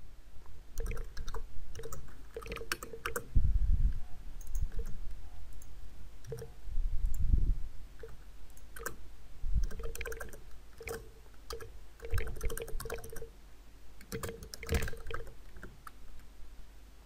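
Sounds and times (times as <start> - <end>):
keyboard typing clicks: 0.8 - 3.3, 4.4 - 7.3, 8.0 - 9.0, 9.6 - 13.3, 14.0 - 16.0.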